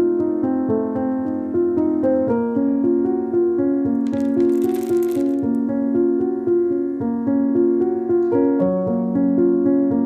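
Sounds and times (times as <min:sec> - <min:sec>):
small diamonds pouring onto cloth: 0:04.0 - 0:05.6.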